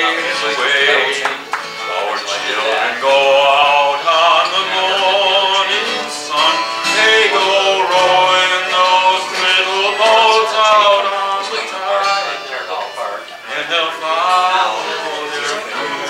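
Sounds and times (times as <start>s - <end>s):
fiddle melody: 0.0s - 16.0s
man singing: 0.0s - 16.0s
strummed acoustic guitar: 0.0s - 16.0s.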